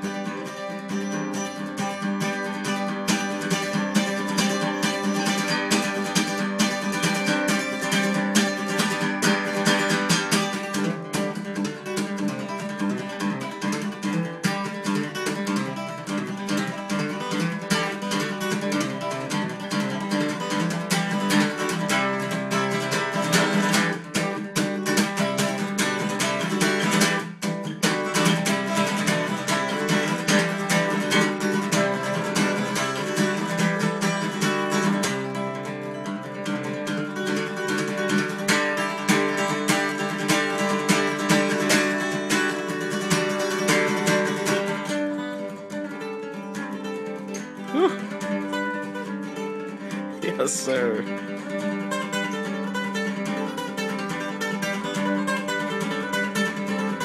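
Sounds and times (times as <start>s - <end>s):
acoustic guitar picking and strumming: 0.0s - 57.0s.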